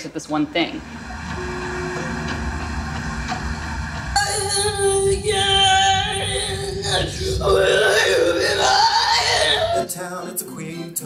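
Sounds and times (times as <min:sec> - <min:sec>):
low drone: 0:00.0 - 0:09.9.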